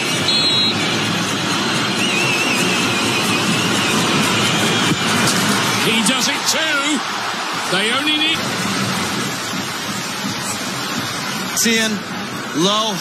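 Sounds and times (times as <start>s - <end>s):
stadium crowd roar: 0.0s - 13.0s
short high whistle: 0.2s - 0.8s, 2.0s - 4.0s
shrill wavering whistles: 2.0s - 5.0s.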